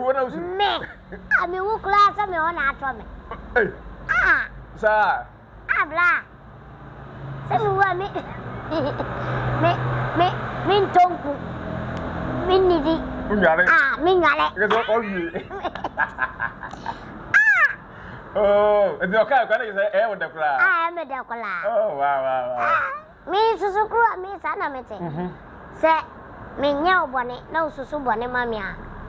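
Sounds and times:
high-pitched wordless exclamations: 0:00.2 - 0:04.6, 0:05.7 - 0:06.4, 0:07.5 - 0:08.4, 0:17.3 - 0:17.8, 0:20.6 - 0:25.1
high-pitched squeal of laughter: 0:04.1 - 0:04.5, 0:15.5 - 0:17.8
breathy laughter: 0:14.7 - 0:17.2, 0:25.0 - 0:25.4.

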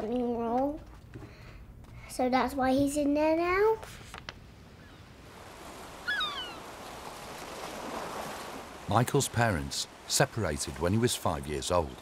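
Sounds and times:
gentle sea surf: 0:03.8 - 0:12.0
gull call: 0:06.0 - 0:06.7.

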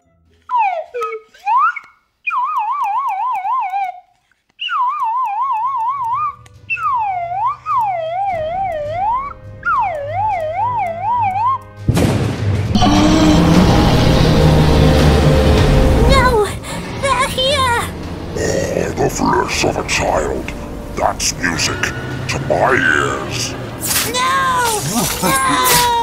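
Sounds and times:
whistle gliding phrases: 0:00.0 - 0:11.8, 0:19.3 - 0:25.8
low background drone: 0:12.7 - 0:26.0.

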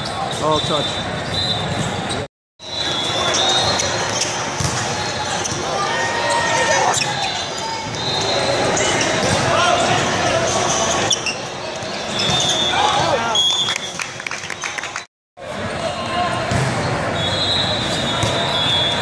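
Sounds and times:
sneakers squeaking on court: 0:00.0 - 0:14.7
crowd chatter echoing: 0:02.6 - 0:13.5.

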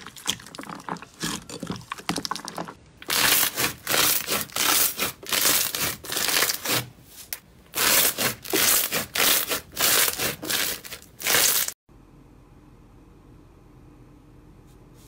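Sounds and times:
crunchy slime crackling: 0:00.0 - 0:06.9, 0:07.7 - 0:11.8.

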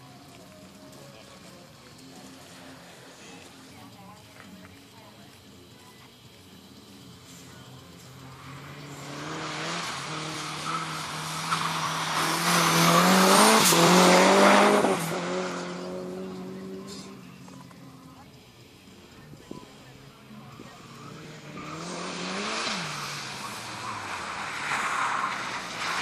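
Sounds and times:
tyres hissing on wet asphalt: 0:00.2 - 0:26.0
race car engine accelerating: 0:07.0 - 0:18.2, 0:18.9 - 0:26.0.

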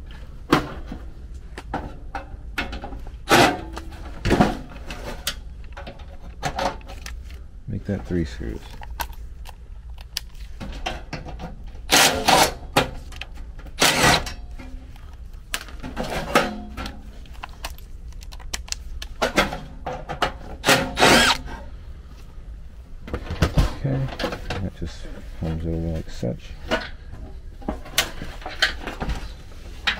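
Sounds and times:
impact driver running: 0:13.8 - 0:14.2, 0:20.7 - 0:21.4.

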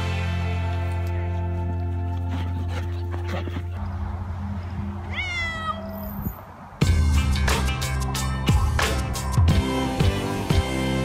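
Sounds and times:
background music: 0:00.0 - 0:04.7, 0:06.8 - 0:11.0
cat meowing: 0:05.0 - 0:06.4.

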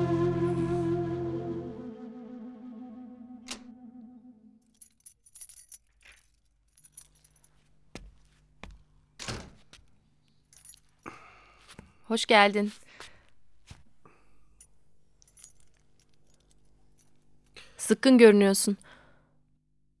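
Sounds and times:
soft woodwind music: 0:00.0 - 0:04.7
keys jingling and clicking: 0:04.7 - 0:07.7, 0:10.5 - 0:11.1, 0:14.6 - 0:17.3.

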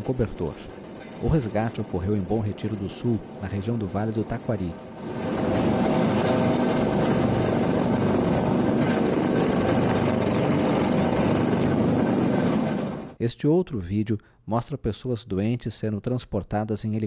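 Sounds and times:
helicopter hovering overhead: 0:00.0 - 0:13.2.

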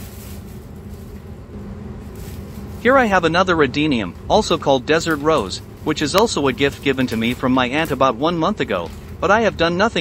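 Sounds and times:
even hiss: 0:00.0 - 0:01.2, 0:02.0 - 0:09.9
steady low hum: 0:00.0 - 0:10.0.

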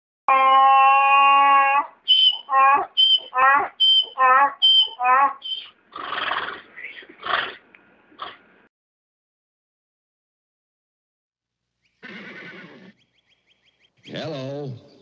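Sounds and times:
donkey braying: 0:00.3 - 0:07.6, 0:12.0 - 0:13.0.

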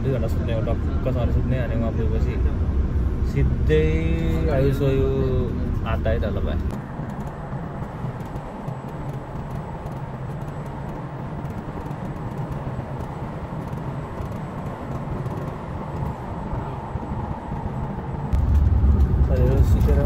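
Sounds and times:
bus engine and road noise: 0:00.0 - 0:20.0
loud deep rumble: 0:00.0 - 0:20.0.

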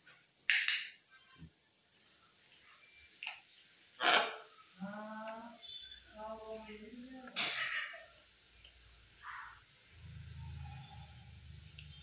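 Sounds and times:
parrot squawking: 0:04.0 - 0:04.4.

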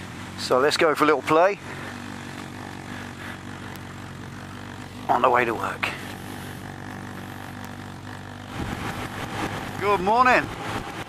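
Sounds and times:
motorcycle engine running at low revs: 0:00.0 - 0:11.0.

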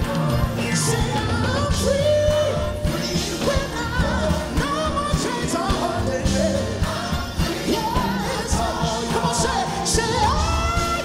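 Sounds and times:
band with drums: 0:00.0 - 0:11.0
group singing gospel: 0:00.0 - 0:11.0.

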